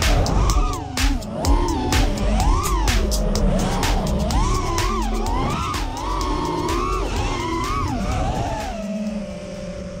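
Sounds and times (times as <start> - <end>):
quadcopter motors whining: 0.0 - 10.0.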